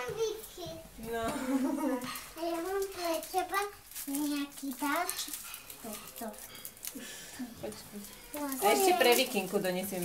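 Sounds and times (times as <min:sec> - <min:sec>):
small children murmuring: 0:00.0 - 0:09.6.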